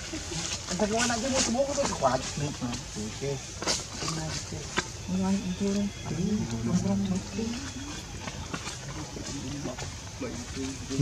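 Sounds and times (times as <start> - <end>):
faint voices talking: 0.0 - 11.0
rustles: 0.0 - 11.0.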